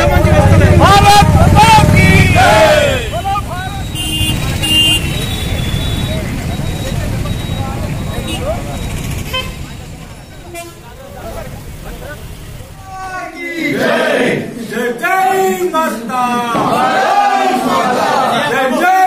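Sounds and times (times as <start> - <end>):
scattered voices: 0.0 - 5.2, 5.8 - 19.0
traffic rumble: 0.0 - 18.9
vehicle horn toots: 1.7 - 6.3, 7.5 - 8.6, 9.2 - 9.7.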